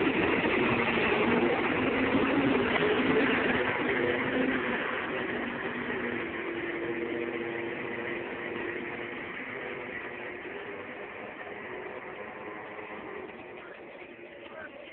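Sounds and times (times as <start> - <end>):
cars racing at full throttle: 0.0 - 14.9.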